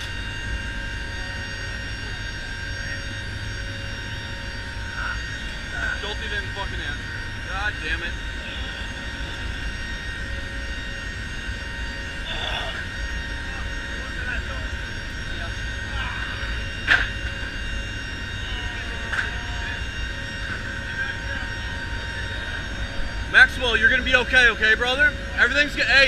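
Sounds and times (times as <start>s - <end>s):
turboprop engines droning: 0.0s - 26.0s.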